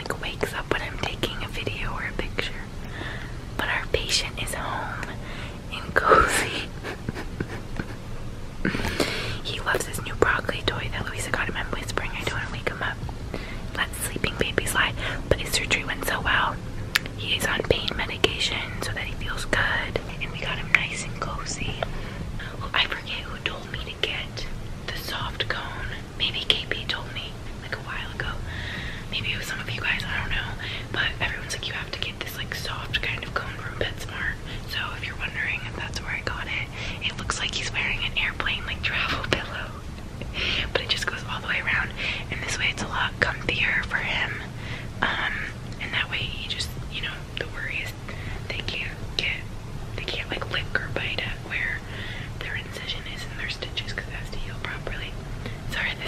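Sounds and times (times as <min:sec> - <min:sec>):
woman whispering: 0:00.0 - 0:02.8, 0:03.6 - 0:06.8, 0:09.4 - 0:49.4, 0:50.0 - 0:56.0
low steady hum: 0:00.0 - 0:56.0.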